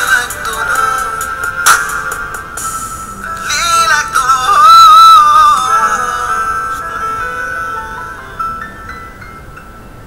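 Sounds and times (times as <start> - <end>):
person singing pitch-bending melody: 0.0 - 1.5, 3.2 - 8.6
pop song backing track: 0.0 - 8.3.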